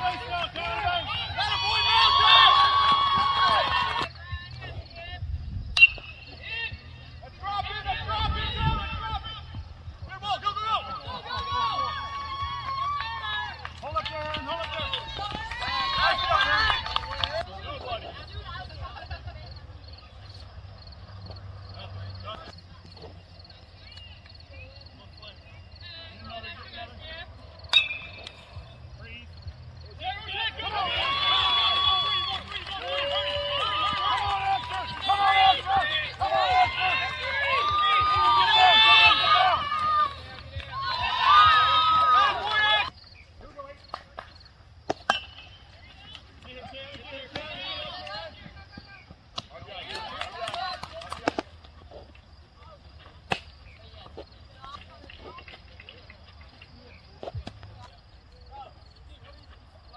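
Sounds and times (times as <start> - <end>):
baseball bat striking ball: 5.8 - 6.2, 27.7 - 28.4, 44.9 - 45.5.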